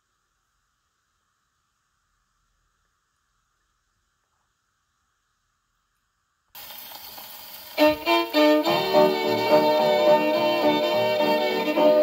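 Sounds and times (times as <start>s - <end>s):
record surface hiss: 0.0s - 12.0s.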